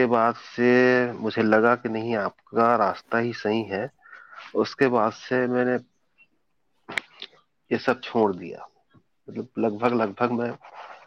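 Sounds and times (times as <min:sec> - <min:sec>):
man speaking: 0:00.0 - 0:06.0, 0:06.9 - 0:11.0.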